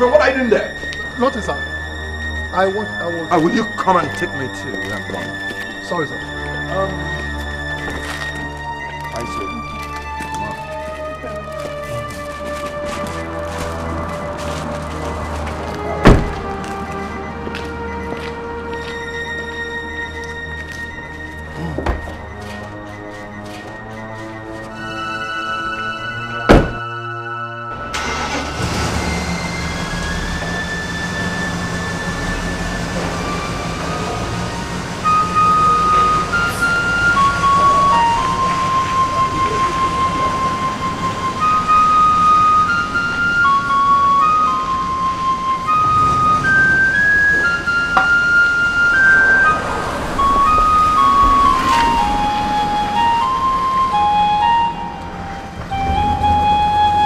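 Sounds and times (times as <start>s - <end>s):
background music with held notes: 0.0s - 57.0s
car door shutting: 15.8s - 16.5s, 26.4s - 26.9s
car engine running: 27.9s - 42.6s.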